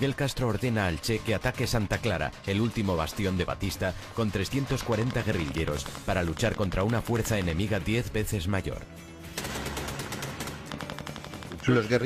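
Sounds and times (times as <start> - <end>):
rapid automatic gunfire: 9.3 - 12.0.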